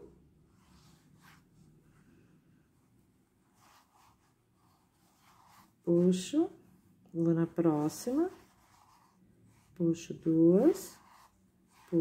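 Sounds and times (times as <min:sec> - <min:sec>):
crochet hook and yarn rustling: 0:03.4 - 0:12.0
woman speaking: 0:05.8 - 0:08.5, 0:09.8 - 0:11.2.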